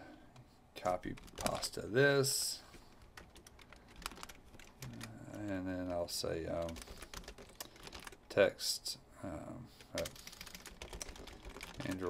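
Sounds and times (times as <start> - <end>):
computer keyboard clicks: 3.2 - 6.0, 6.6 - 8.2, 9.9 - 12.0.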